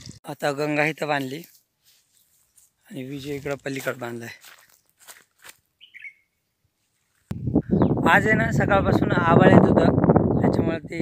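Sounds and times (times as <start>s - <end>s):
man speaking: 0.2s - 1.5s, 2.9s - 4.4s, 8.0s - 11.0s
short bird chirp: 5.8s - 6.3s.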